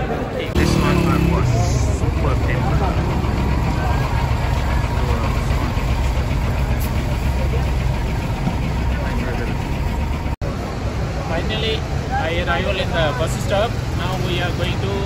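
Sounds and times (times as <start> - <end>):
diesel engines idling: 0.0 - 15.0
people's voices: 0.0 - 15.0.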